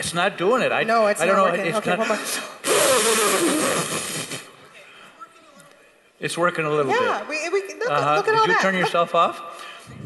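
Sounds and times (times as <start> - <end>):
breathy blow of air: 2.6 - 4.5.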